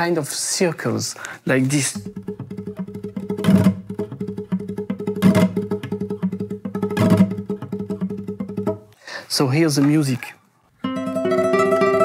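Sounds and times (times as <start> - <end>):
classical guitar tremolo: 2.0 - 8.9, 10.8 - 12.0
strummed guitar chords: 2.0 - 8.9, 10.8 - 12.0.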